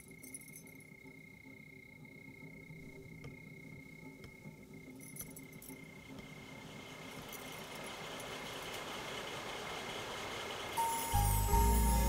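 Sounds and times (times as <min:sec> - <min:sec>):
music: 0:10.8 - 0:12.0.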